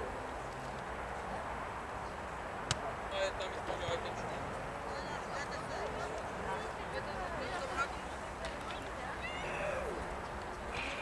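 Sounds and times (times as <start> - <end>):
outdoor noise: 0.0 - 11.0
children shouting: 9.2 - 10.1.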